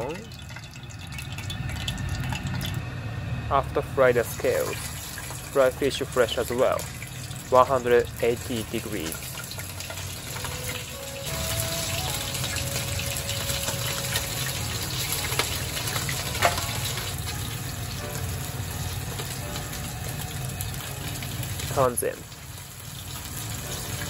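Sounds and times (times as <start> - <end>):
fish frying in oil: 0.0 - 2.8, 3.8 - 24.0.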